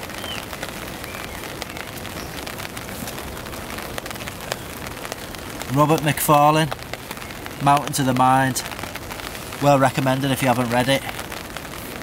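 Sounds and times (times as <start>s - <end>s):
rain pattering on tarp: 0.0s - 12.0s.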